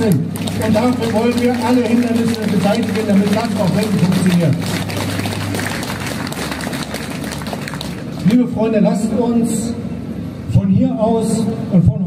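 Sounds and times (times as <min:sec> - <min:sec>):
crowd applauding: 0:00.0 - 0:08.3.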